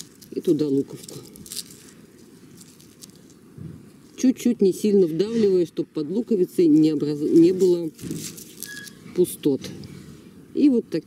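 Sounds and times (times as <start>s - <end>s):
garden soil rustling and crumbling: 0.0s - 9.6s.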